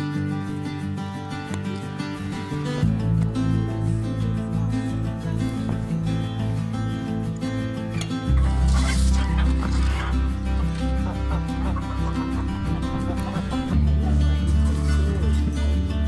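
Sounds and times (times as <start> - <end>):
guitar music with bass line: 0.0 - 16.0
chicken calling: 8.4 - 14.3.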